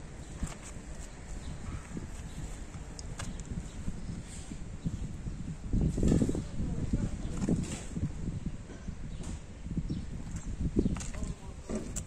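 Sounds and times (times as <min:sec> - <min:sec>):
footsteps on pavement: 0:00.2 - 0:04.2.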